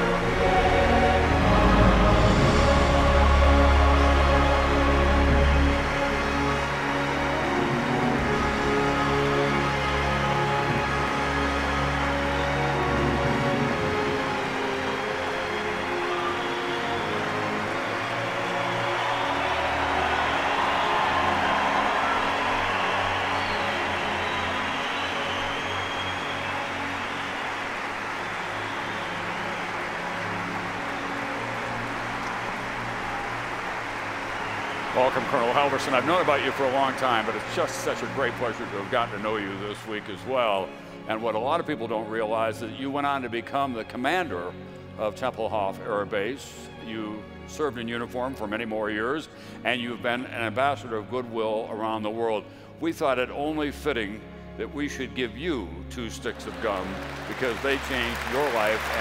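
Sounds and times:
audience applause: 0.0s - 41.0s, 56.3s - 59.0s
orchestral music: 0.0s - 59.0s.

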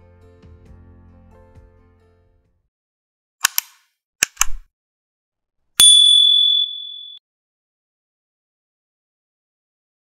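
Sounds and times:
sharp clicks: 3.4s - 4.6s
bright bell ding: 5.8s - 7.2s.

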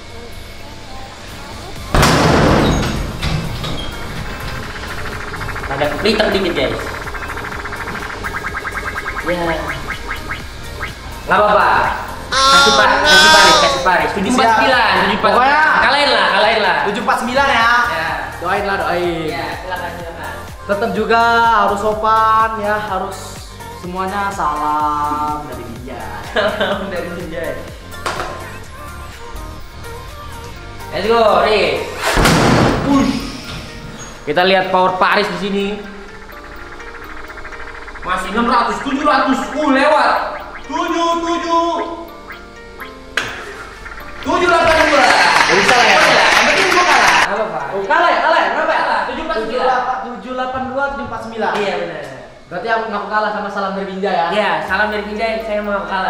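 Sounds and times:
rising electronic chirps: 4.0s - 11.4s, 35.1s - 46.6s.

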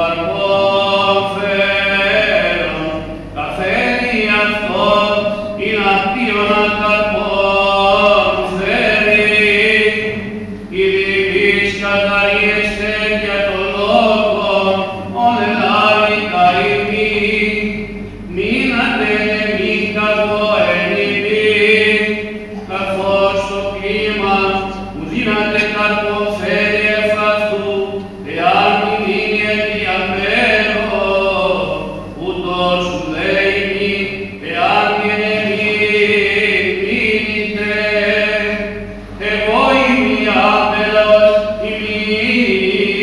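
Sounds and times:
man chanting: 0.0s - 43.0s.

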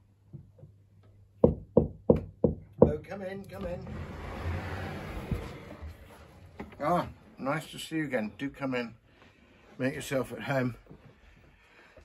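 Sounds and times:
knuckles knocking on wooden door: 1.4s - 3.0s.

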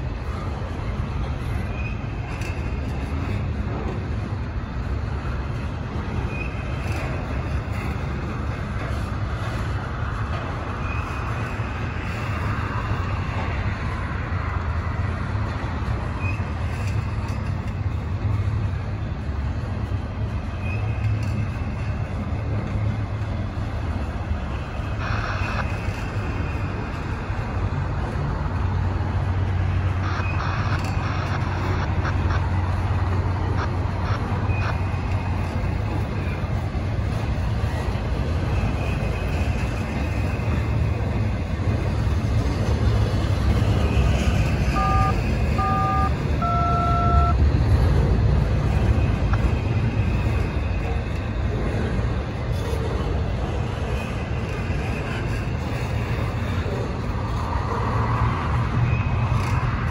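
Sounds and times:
freight train wheels rumbling on rail: 0.0s - 46.5s, 47.1s - 59.9s
short electronic beeps: 44.6s - 47.4s.

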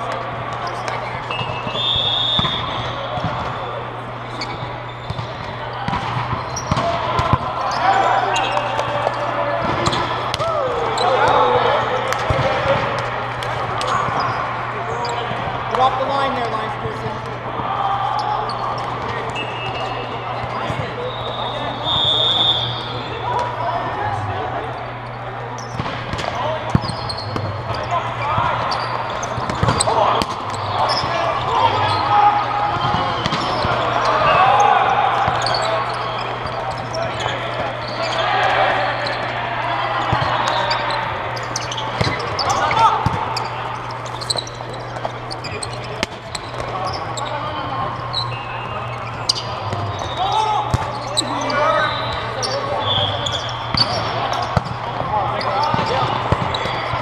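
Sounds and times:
players calling out: 0.0s - 57.0s.

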